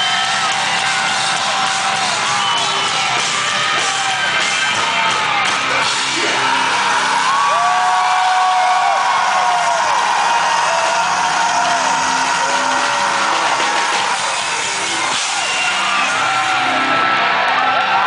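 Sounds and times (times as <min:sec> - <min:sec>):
crowd yelling and whooping: 0:00.0 - 0:18.0
live metal band playing: 0:00.0 - 0:18.0.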